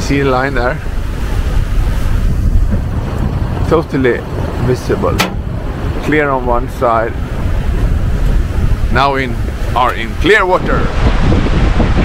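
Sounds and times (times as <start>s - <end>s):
water rushing along hull: 0.0s - 12.0s
wind buffeting microphone: 0.0s - 12.0s.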